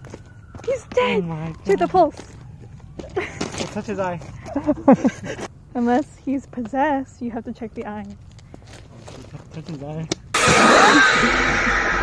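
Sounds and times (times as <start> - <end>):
person laughing: 4.4 - 5.5
loud hiss-like noise burst: 10.4 - 12.0.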